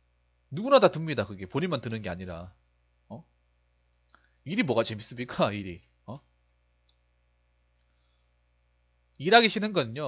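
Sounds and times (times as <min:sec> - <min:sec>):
faint click: 0:06.8 - 0:07.2.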